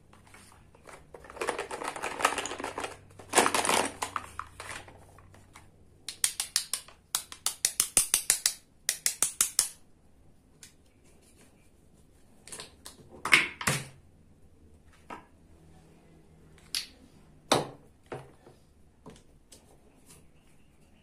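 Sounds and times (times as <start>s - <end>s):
plastic toys rustling and clattering: 0.0s - 5.8s.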